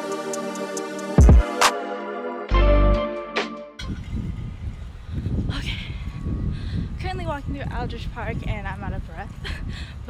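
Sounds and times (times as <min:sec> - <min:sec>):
background music: 0:00.0 - 0:03.9
wind rumble on microphone: 0:03.8 - 0:10.0.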